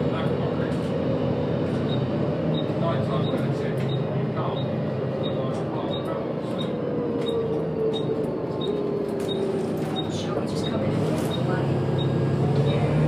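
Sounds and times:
bus diesel engine running: 0:00.0 - 0:13.0.

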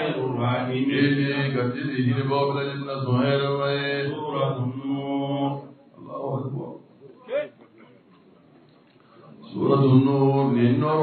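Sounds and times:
men chanting: 0:00.0 - 0:06.8, 0:09.4 - 0:11.0.

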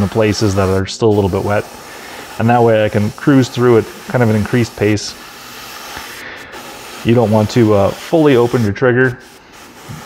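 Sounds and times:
airbrush spraying hiss: 0:00.0 - 0:10.0.

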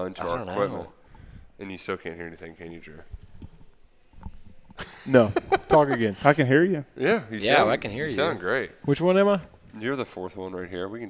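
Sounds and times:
man speaking: 0:00.0 - 0:01.0, 0:05.1 - 0:11.0
low room noise: 0:00.0 - 0:11.0.

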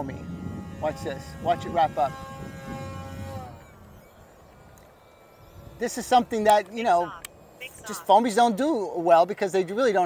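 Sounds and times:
model plane motor whine: 0:00.0 - 0:09.1
faint wind noise: 0:00.0 - 0:10.0.

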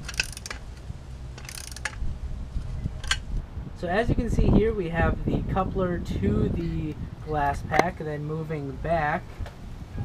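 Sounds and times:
ratchet wrench clicking: 0:00.0 - 0:02.0
steady low rumble: 0:00.0 - 0:10.0.

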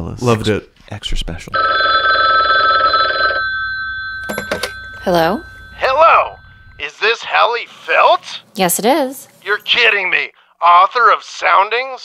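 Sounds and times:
telephone bell ringing: 0:01.6 - 0:06.8.

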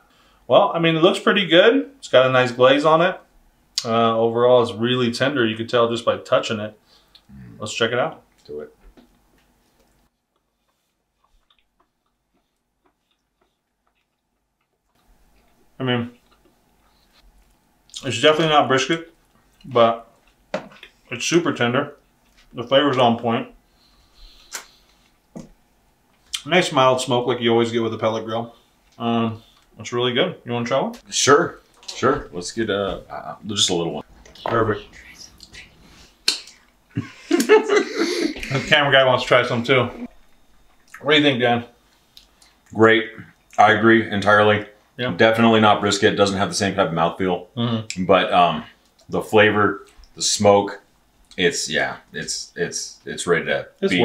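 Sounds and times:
person chewing food: 0:09.1 - 0:18.0, 0:19.2 - 0:21.0, 0:40.0 - 0:41.0
person whispering: 0:34.3 - 0:35.9.

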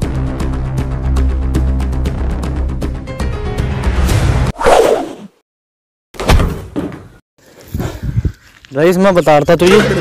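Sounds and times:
background music: 0:00.0 - 0:04.5.

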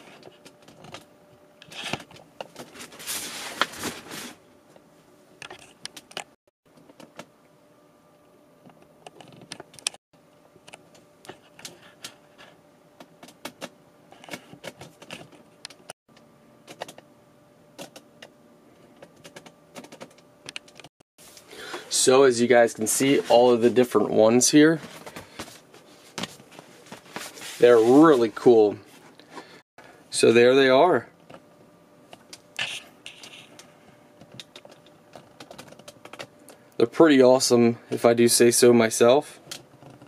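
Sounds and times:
faint steady hum: 0:00.0 - 0:40.0.

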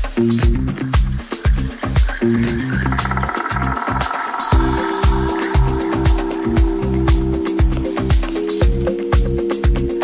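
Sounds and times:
kick drum: 0:00.0 - 0:02.2, 0:04.5 - 0:10.0
fast pulsing synth: 0:02.2 - 0:08.2
held bass synth note: 0:02.5 - 0:08.0.

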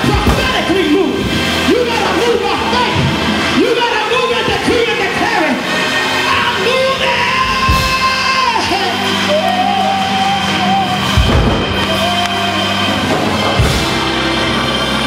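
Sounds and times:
congregation shouting and whooping: 0:00.0 - 0:15.0
live gospel band playing: 0:00.0 - 0:15.0.

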